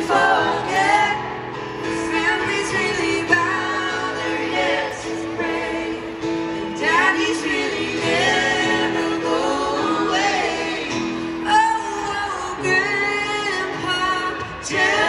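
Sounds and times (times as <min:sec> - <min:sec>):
live country music over pa: 0:00.0 - 0:15.0
voices singing together: 0:00.0 - 0:15.0.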